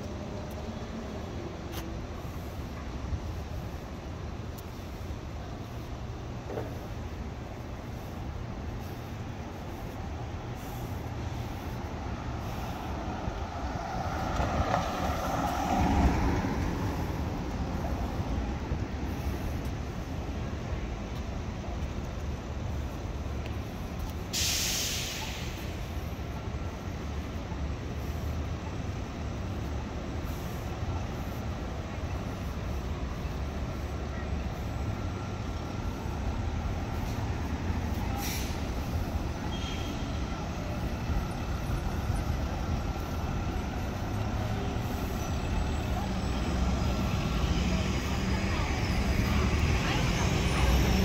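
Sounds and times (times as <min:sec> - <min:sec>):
traffic rumble: 0:00.0 - 0:51.0
air brake hiss: 0:24.2 - 0:26.3, 0:36.0 - 0:40.3.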